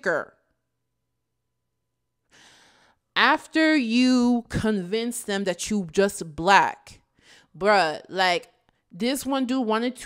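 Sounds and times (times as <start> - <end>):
woman breathing: 2.2 - 3.2, 7.1 - 7.6.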